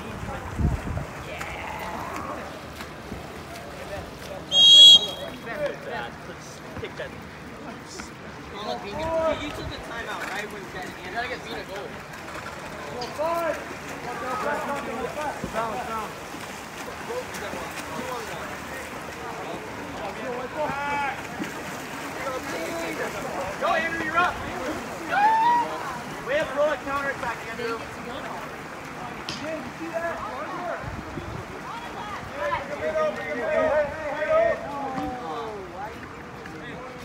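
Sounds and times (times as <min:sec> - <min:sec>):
swimmers splashing water: 0:00.0 - 0:37.0
people calling out: 0:04.5 - 0:05.4, 0:25.0 - 0:26.2
people shouting: 0:25.0 - 0:26.0.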